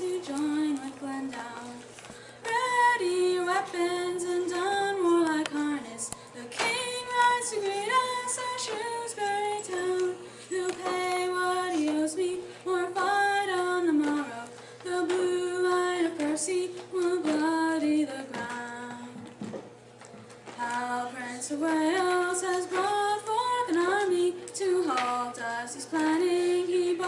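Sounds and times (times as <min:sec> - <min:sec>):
woman singing unaccompanied: 0:00.0 - 0:19.4, 0:20.5 - 0:27.0
woman breathing: 0:02.1 - 0:02.4.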